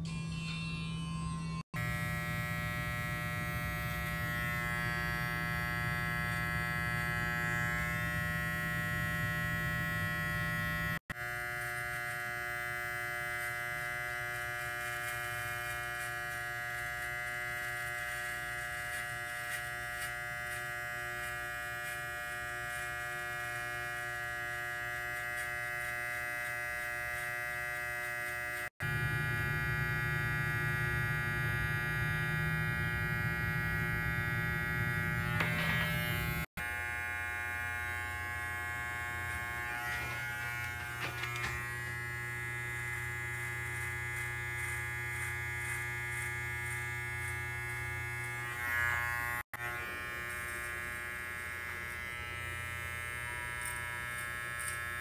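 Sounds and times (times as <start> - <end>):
hair trimmer buzzing: 0.0 - 55.0.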